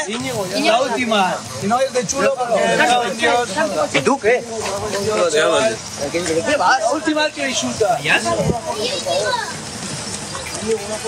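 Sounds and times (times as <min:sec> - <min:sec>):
men arguing: 0:00.0 - 0:09.6.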